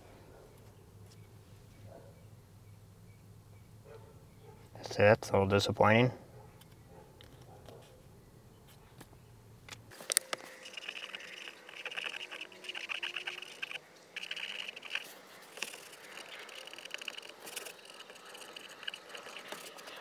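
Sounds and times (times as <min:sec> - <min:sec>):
tool scraping plastic: 0:10.0 - 0:20.0.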